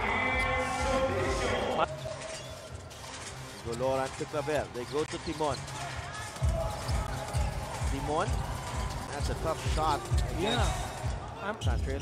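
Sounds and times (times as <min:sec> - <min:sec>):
arena music with thumping beat: 0:06.3 - 0:12.0.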